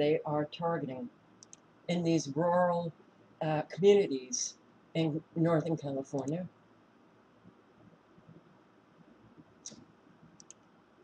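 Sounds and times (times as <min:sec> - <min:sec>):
computer mouse clicks: 0:01.4 - 0:01.7, 0:09.4 - 0:10.7.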